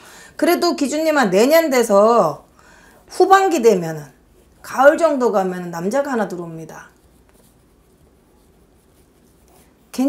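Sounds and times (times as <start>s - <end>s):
pen scratching on paper: 5.9s - 10.0s.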